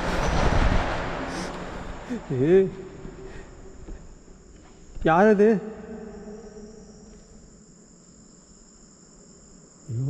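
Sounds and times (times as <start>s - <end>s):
crickets trilling: 1.3s - 10.0s.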